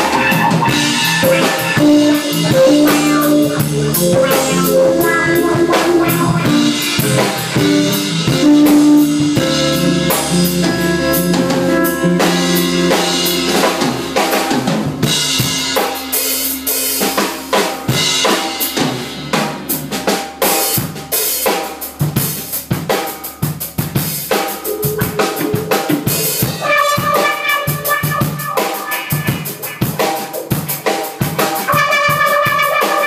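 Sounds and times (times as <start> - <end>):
drum kit playing: 0.0 - 33.0
electric bass: 0.0 - 33.0
trumpet holding notes: 26.5 - 30.1, 31.6 - 33.0.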